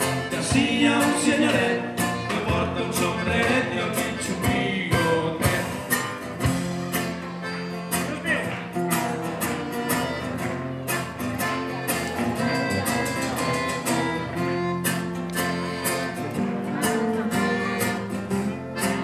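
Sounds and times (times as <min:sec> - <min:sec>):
acoustic guitars: 0:00.0 - 0:19.0
button accordion: 0:00.0 - 0:19.0
steady drum beat: 0:02.4 - 0:07.4.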